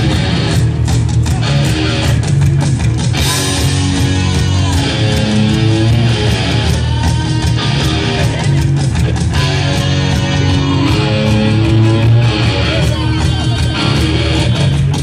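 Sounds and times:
punk rock band playing live: 0:00.0 - 0:15.0.

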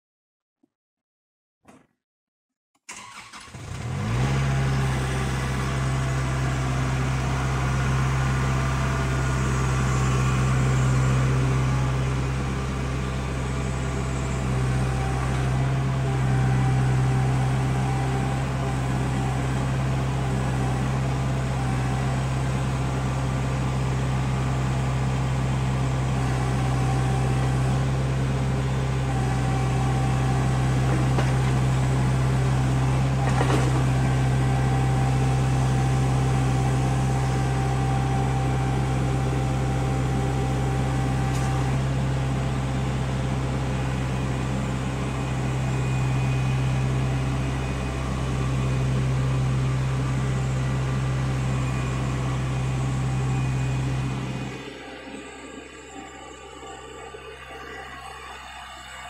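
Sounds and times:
tractor engine running: 0:02.9 - 0:59.0.

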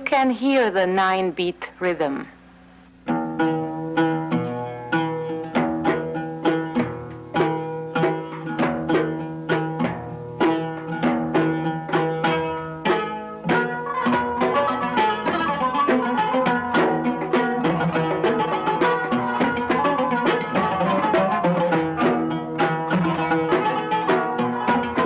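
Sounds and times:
plucked string melody: 0:03.0 - 0:25.0
hand drum strokes: 0:03.1 - 0:25.0.

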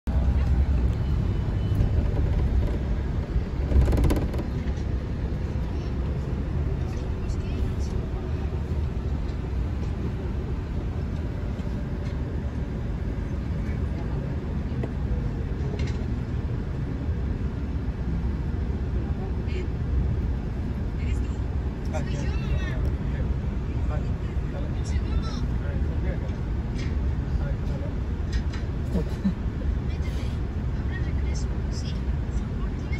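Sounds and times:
bus engine and road rumble: 0:00.0 - 0:32.9.

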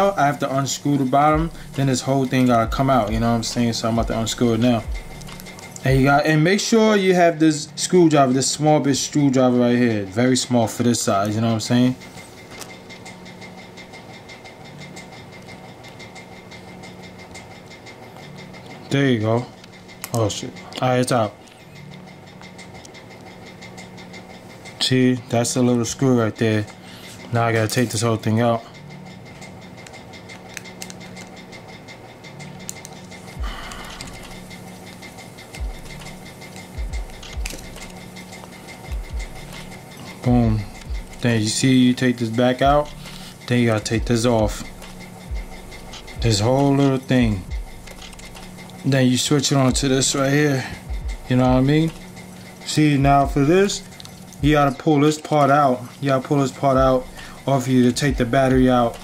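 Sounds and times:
low electrical hum: 0:00.0 - 0:59.0
thin high whine: 0:00.0 - 0:59.0
plastic parts clicking and rubbing: 0:29.8 - 0:31.4, 0:33.7 - 0:45.1.

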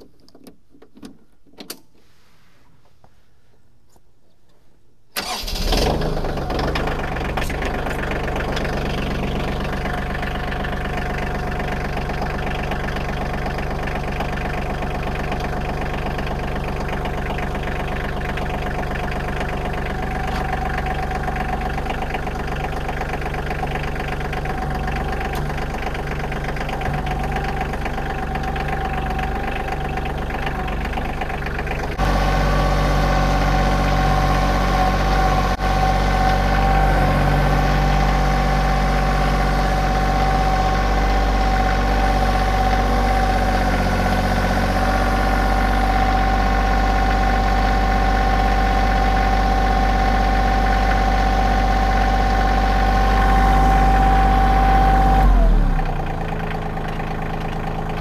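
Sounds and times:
diesel tractor engine idling: 0:05.2 - 0:58.0.

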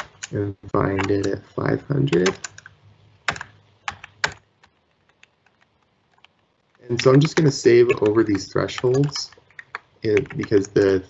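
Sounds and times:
computer mouse clicking: 0:00.0 - 0:00.4, 0:02.1 - 0:04.4, 0:05.0 - 0:10.8.

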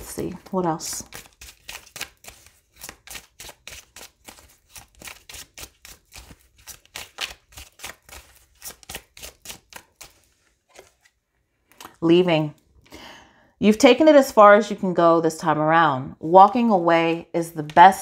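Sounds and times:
cards being shuffled: 0:00.1 - 0:12.0.

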